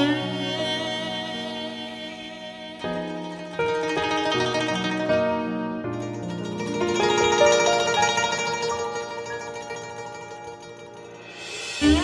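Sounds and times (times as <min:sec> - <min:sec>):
plucked zither notes: 0:02.7 - 0:12.0.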